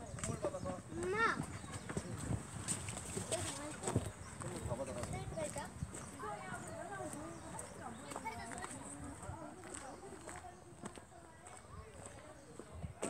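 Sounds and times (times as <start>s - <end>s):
indistinct voices talking: 0.0s - 13.0s
footsteps: 0.2s - 13.0s.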